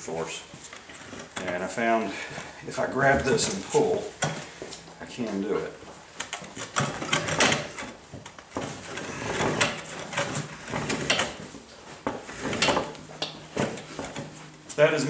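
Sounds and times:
tire and bar scraping against rim: 8.6s - 15.0s.

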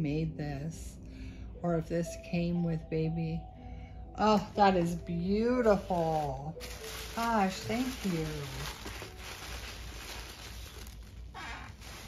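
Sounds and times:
tissue paper rustling: 4.4s - 12.0s.

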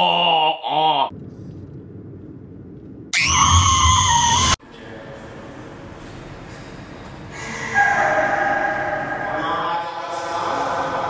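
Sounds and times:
child screaming: 3.2s - 4.6s
voice with wavering pitch: 7.4s - 10.5s.

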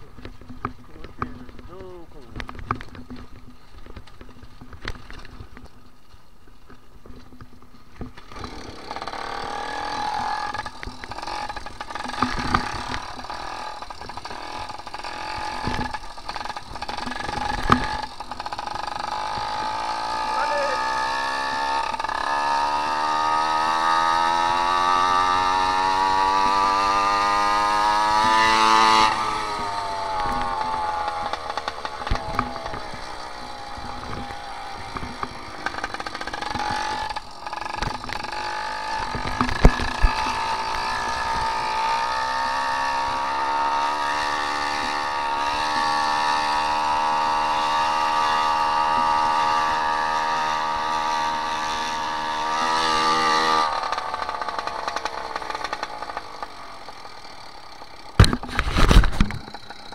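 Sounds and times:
two-stroke bicycle engine running: 0.0s - 59.9s.

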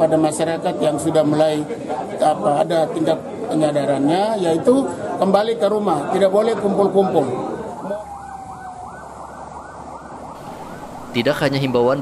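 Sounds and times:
fire truck siren yelping: 7.6s - 12.0s
steady siren tone: 7.7s - 12.0s.

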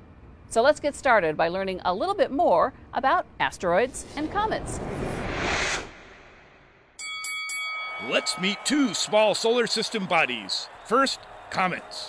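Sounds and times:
bell-like chime notes: 7.0s - 9.0s.

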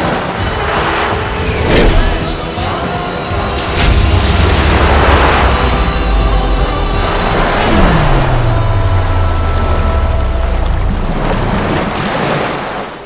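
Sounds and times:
loud rushing noise: 0.0s - 12.7s
dramatic orchestral score: 0.0s - 13.0s
deep tone sliding down: 4.0s - 11.9s.

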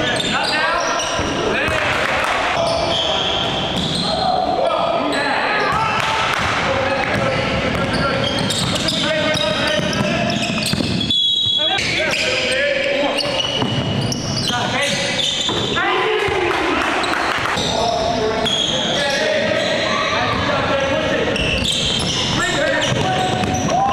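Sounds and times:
players' voices: 0.0s - 23.9s.

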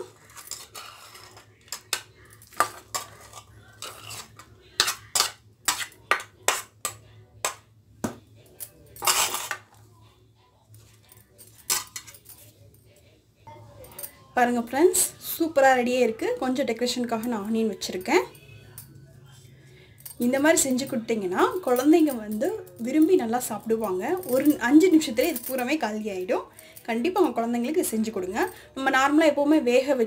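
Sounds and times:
spoon clinking against steel bowl: 0.0s - 7.6s.

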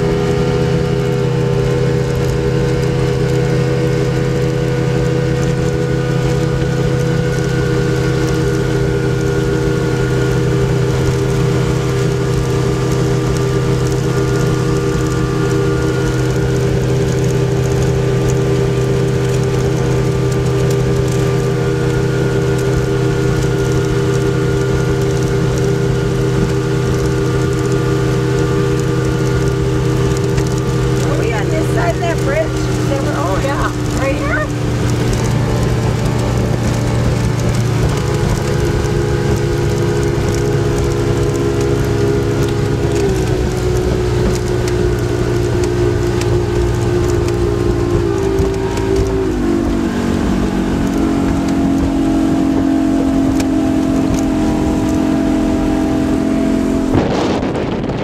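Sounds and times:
speedboat engine drone: 0.0s - 58.0s.

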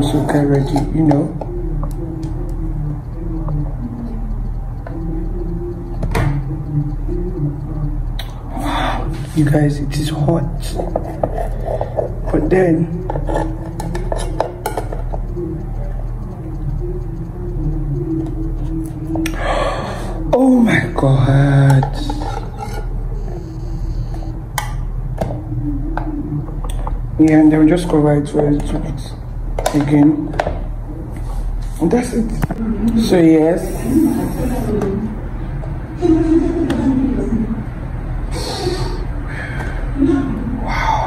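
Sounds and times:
steady low hum: 0.0s - 41.0s
knife scraping nonstick plates: 22.1s - 22.9s.

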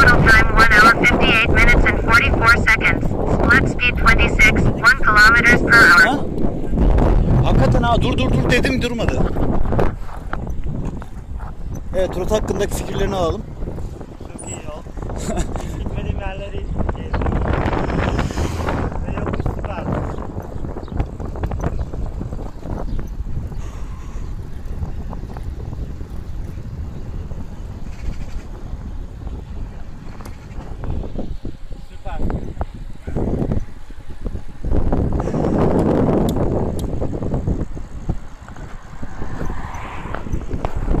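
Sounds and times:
wind buffeting microphone: 0.0s - 41.0s.

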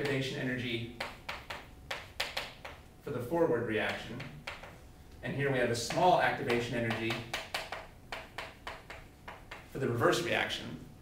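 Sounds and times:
chalk tapping on chalkboard: 1.0s - 2.9s, 3.8s - 4.8s, 5.8s - 9.8s.

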